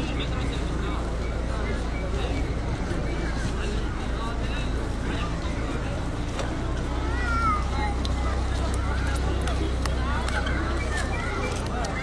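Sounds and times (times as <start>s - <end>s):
indistinct crowd voices: 0.0s - 12.0s.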